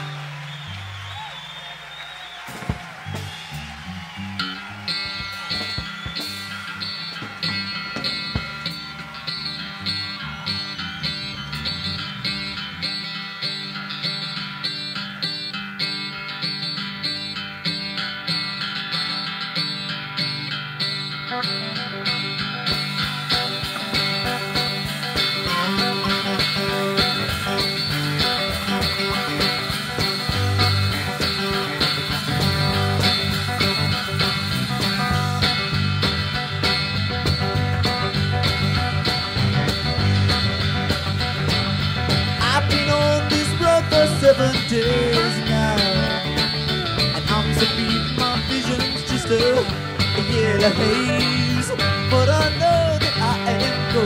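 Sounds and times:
country-rock band playing: 0.0 - 54.0.

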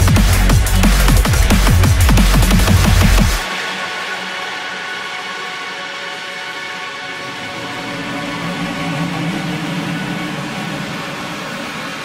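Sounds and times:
hissing noise layer: 0.0 - 12.0
sustained synthesizer pad: 0.0 - 12.0.

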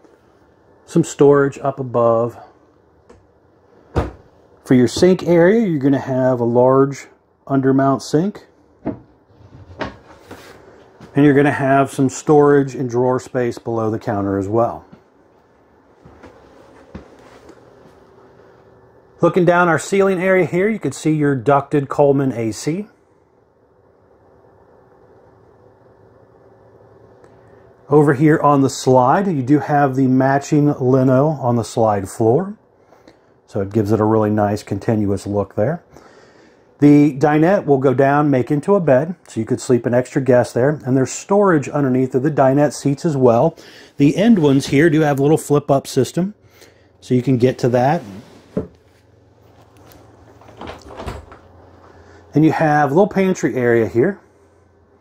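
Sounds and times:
cabinet door opening: 3.9 - 4.3, 8.8 - 10.3, 50.2 - 51.5.

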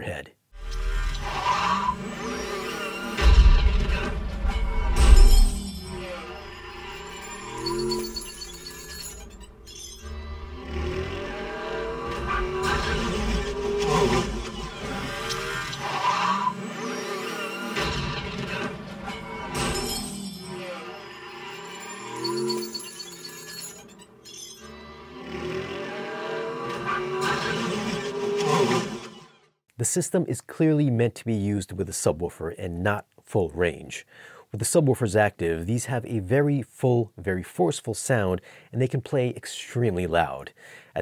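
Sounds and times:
action movie score music: 0.6 - 22.8
cars crashing: 1.4 - 23.2.

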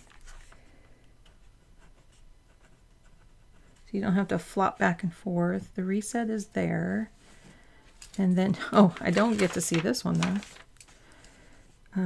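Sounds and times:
person speaking: 8.2 - 10.6.

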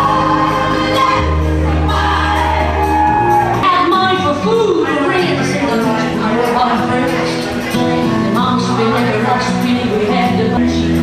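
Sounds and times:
held bass notes: 0.0 - 11.0.

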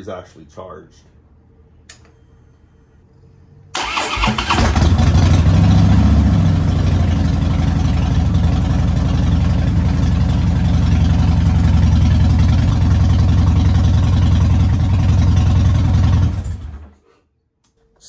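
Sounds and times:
electric starter cranking: 3.8 - 5.2
motorcycle engine revving and idling: 4.2 - 16.8.

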